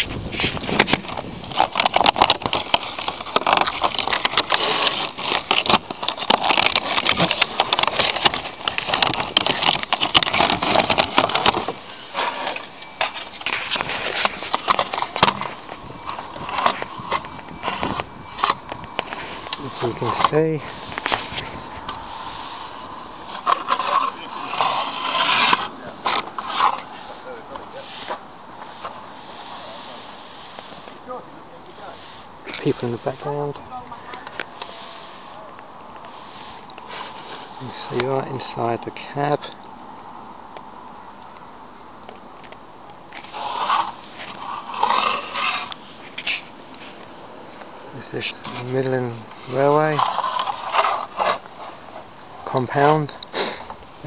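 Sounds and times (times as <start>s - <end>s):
microphone handling noise: 0.0s - 31.0s
faint steady hiss: 0.0s - 54.0s.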